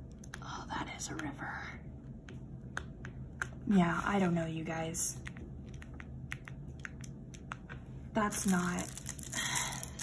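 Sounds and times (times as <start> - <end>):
plastic film crackling: 8.4 - 10.0.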